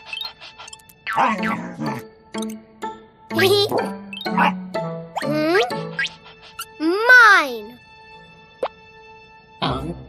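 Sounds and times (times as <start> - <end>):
wordless cartoon voice: 3.3 - 3.9, 5.2 - 7.8.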